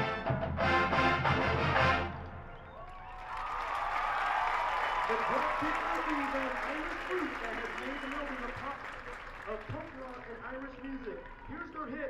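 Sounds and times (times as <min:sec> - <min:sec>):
crowd applauding and cheering: 0:02.4 - 0:12.0.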